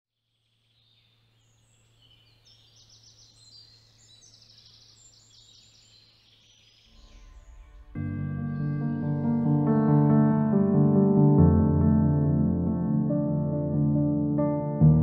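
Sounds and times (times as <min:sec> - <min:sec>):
small birds chirping and trilling: 0:00.2 - 0:09.4
music: 0:07.0 - 0:15.0.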